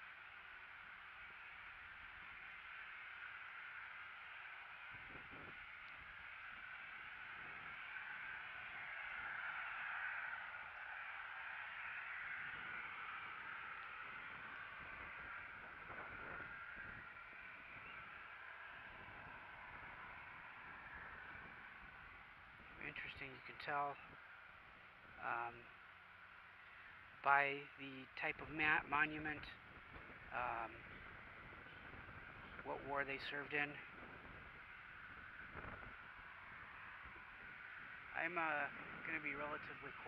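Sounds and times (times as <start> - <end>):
steady outdoor hiss: 0.0 - 40.0.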